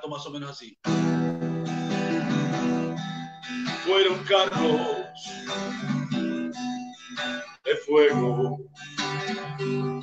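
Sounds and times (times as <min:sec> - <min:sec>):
acoustic guitar strumming: 0:00.8 - 0:10.0.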